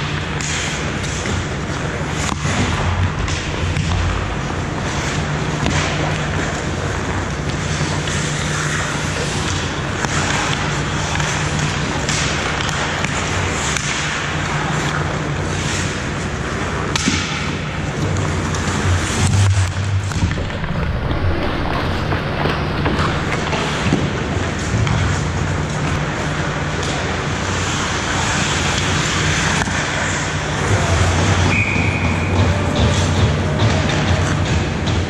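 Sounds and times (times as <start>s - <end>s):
stick and puck clicks: 0.0s - 4.2s, 4.8s - 16.0s, 16.8s - 21.3s
skates scraping ice: 0.0s - 35.0s
steady low hum: 0.0s - 35.0s
whistle blast: 31.5s - 32.3s.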